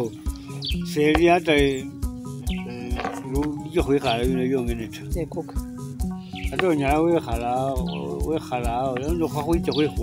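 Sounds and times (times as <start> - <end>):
low drum thumps: 0.7 - 10.0.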